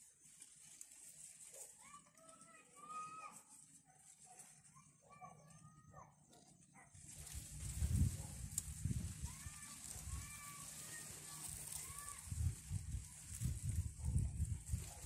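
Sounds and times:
wind buffeting microphone: 7.2s - 10.4s, 11.5s - 15.0s.

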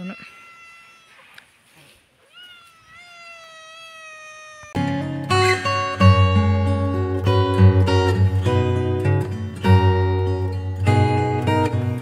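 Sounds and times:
kitten meowing: 0.0s - 1.5s, 2.2s - 4.9s
acoustic guitar music: 4.8s - 12.0s.

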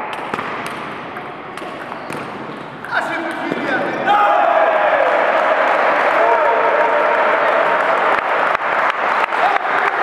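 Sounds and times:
people shouting and cheering: 3.0s - 10.0s.

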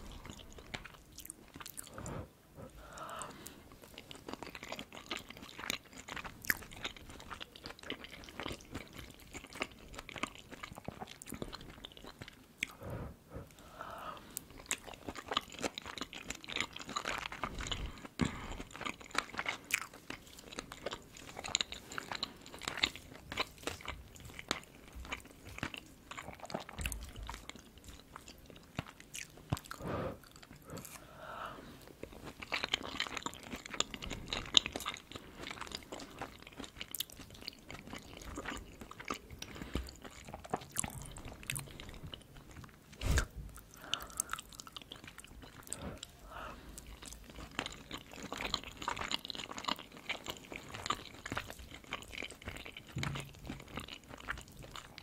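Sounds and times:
chewing with soft crunches: 0.0s - 55.0s.

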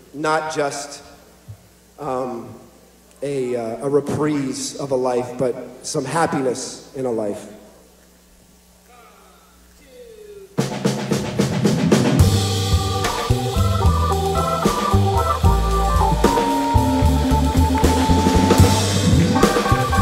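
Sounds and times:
drum-kit hits: 10.6s - 20.0s
swing band playing: 10.6s - 20.0s.

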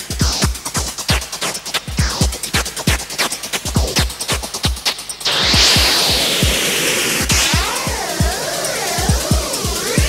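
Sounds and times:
pulsing synthesizer beat: 0.0s - 10.0s.

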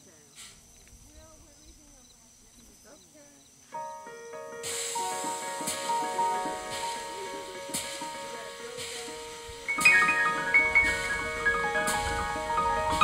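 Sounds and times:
soft hiss: 0.0s - 13.0s
electronic keyboard playing chords: 3.8s - 13.0s.

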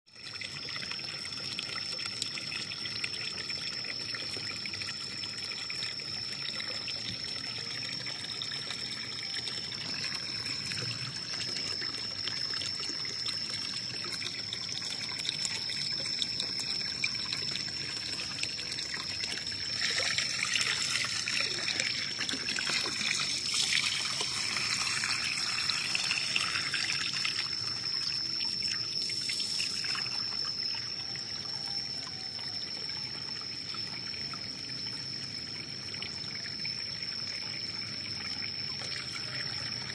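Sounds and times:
water pouring into a pond: 0.1s - 39.9s.

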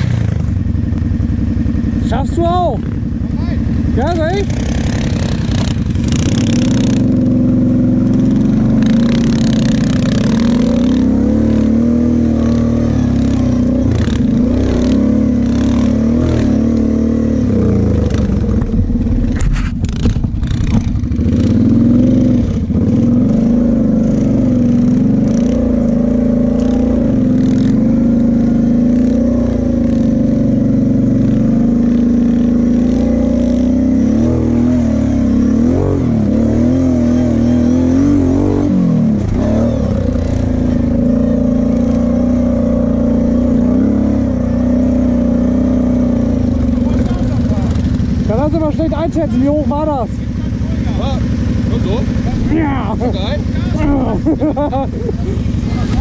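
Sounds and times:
quad engine revving: 0.0s - 56.0s.

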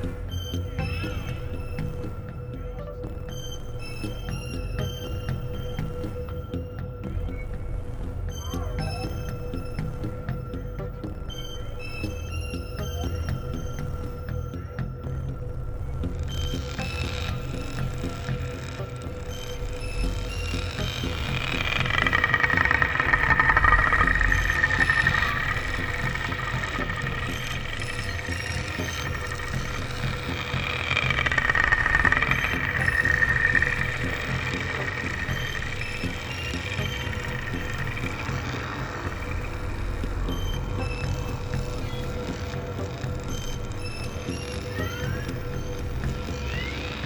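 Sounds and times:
constant hum: 0.0s - 47.0s
low rumble: 15.4s - 46.6s
wavering high tone: 16.3s - 47.0s.

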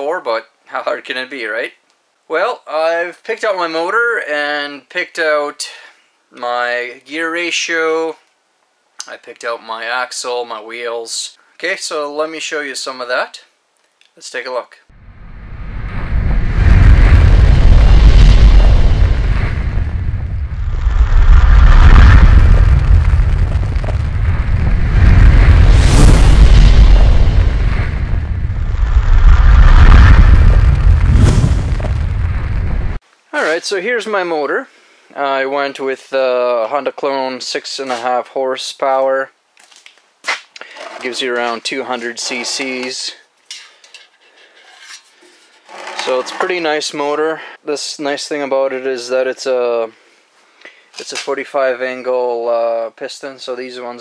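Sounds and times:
deep booming rumble: 15.0s - 33.0s
sharp hit: 15.0s - 33.0s
faint rubbing and handling noise: 39.7s - 46.8s.

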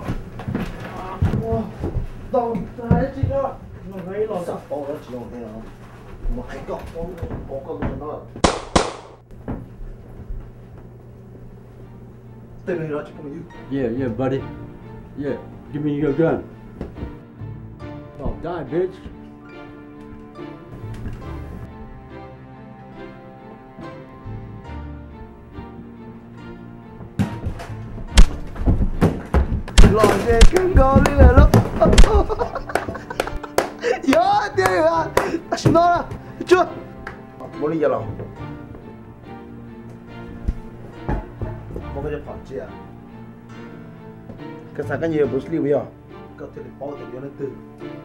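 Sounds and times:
loud sharp bangs: 8.4s - 9.2s
heavy thuds of blows: 27.1s - 33.7s.

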